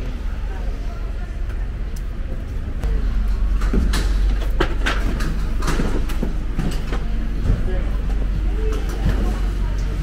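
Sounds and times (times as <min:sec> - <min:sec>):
steady low street rumble: 0:00.0 - 0:10.0.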